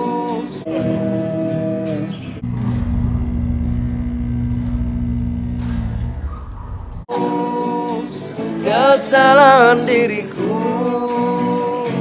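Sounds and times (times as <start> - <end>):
electric guitar through amplifier: 0.6 - 6.3
heavy low rumble: 2.4 - 7.1.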